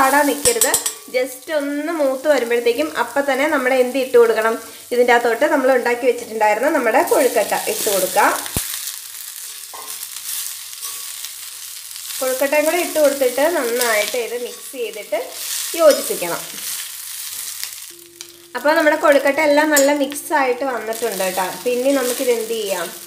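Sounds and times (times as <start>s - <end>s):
dumplings sizzling in hot oil: 0.0s - 23.0s
steel spoon stirring in pan: 7.0s - 20.2s.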